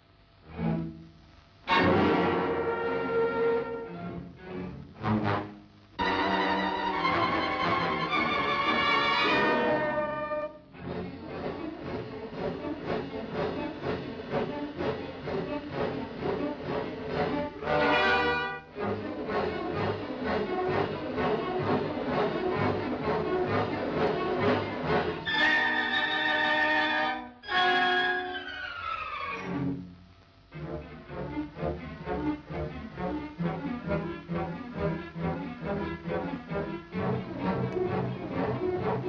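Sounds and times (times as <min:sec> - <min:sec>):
orchestral strings playing: 0:01.7 - 0:28.3, 0:29.5 - 0:39.0.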